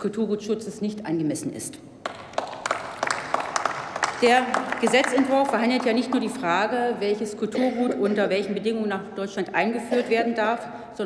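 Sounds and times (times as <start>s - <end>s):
small group applauding: 2.0s - 6.7s.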